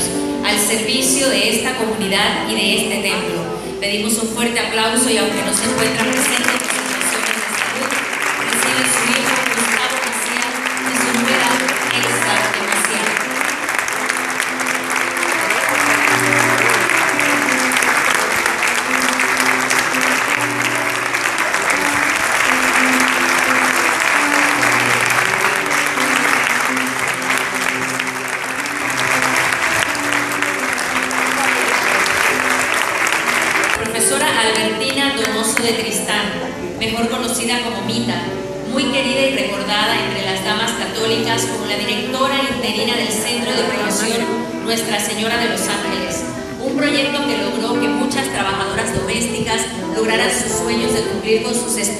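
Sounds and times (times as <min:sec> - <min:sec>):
background music: 0:00.0 - 0:51.9
audience applauding: 0:05.4 - 0:35.8.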